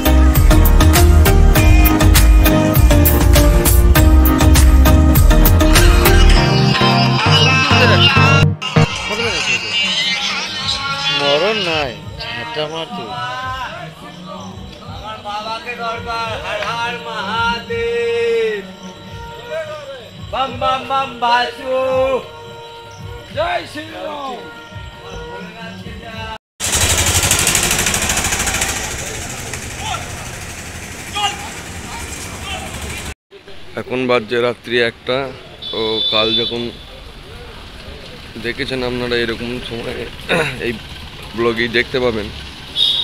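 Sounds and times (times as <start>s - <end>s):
traffic hum: 26.6s - 43.0s.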